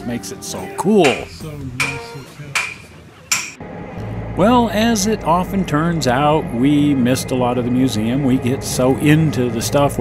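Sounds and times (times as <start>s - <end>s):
hammer striking metal: 1.0s - 3.6s.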